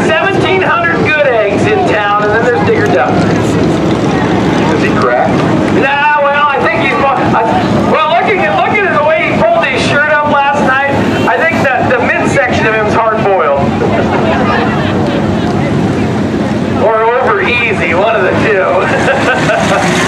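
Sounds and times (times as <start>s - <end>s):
car engines idling: 0.0s - 20.0s
indistinct voices talking: 0.0s - 20.0s.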